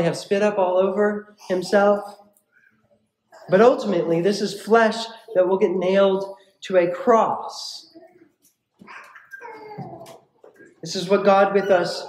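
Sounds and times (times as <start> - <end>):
faint high-pitched whimpering: 7.9 - 10.2.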